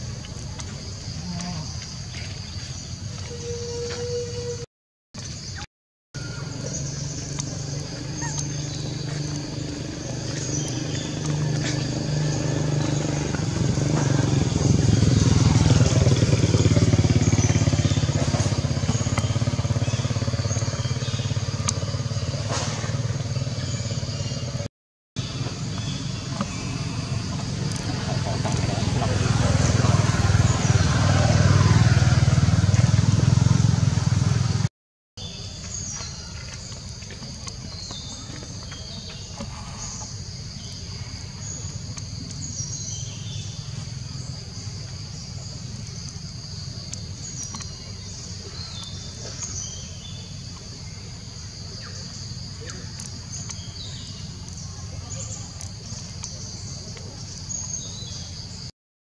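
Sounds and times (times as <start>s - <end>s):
passing vehicle engine drone: 6.4s - 24.6s, 25.3s - 34.7s.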